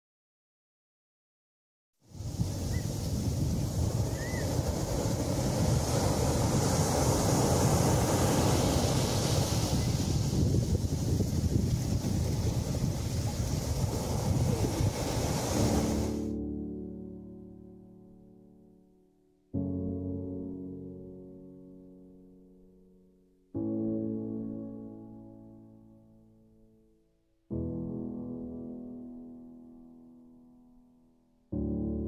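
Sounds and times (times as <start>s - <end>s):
sea waves breaking: 2.1s - 16.4s
wind buffeting microphone: 2.2s - 16.2s
soft piano music: 13.9s - 32.0s.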